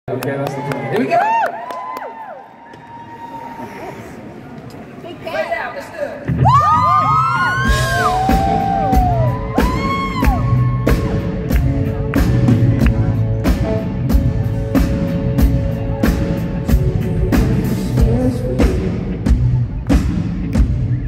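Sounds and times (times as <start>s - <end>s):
audience whooping and screaming: 0.4s - 4.1s, 6.3s - 11.8s
live rock band playing: 6.3s - 21.0s.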